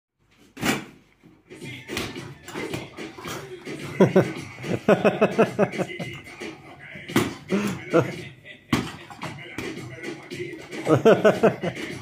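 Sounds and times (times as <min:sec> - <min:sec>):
people talking: 0:01.6 - 0:12.0.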